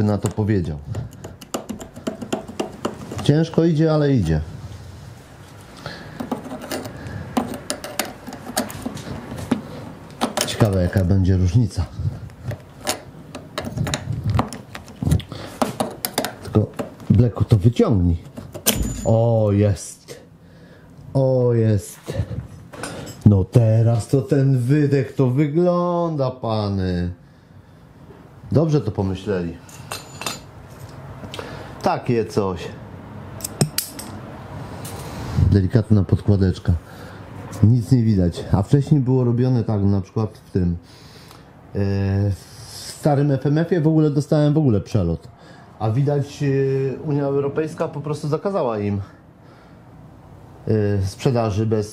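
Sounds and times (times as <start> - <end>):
metal parts clicking and clinking: 6.2 - 8.9, 18.6 - 19.3, 33.4 - 34.2
metallic clicks and scrapes: 6.2 - 11.0.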